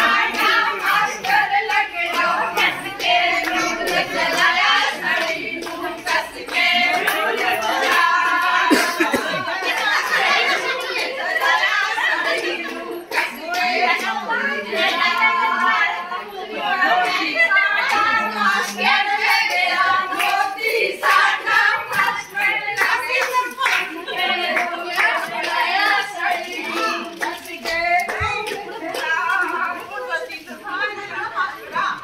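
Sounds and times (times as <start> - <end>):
women clapping hands: 0.0 - 14.2, 17.0 - 29.8
women singing: 0.0 - 32.0.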